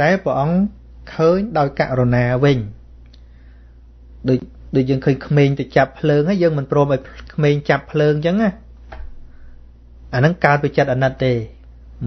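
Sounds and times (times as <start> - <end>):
man speaking: 0.0 - 2.8, 4.2 - 8.7, 10.1 - 12.0.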